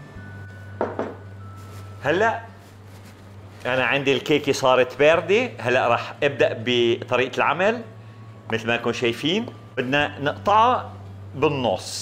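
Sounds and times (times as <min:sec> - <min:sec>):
faint background music: 0:00.0 - 0:12.0
steady low hum: 0:00.0 - 0:12.0
glass bowl knocking on wood: 0:00.8 - 0:01.3.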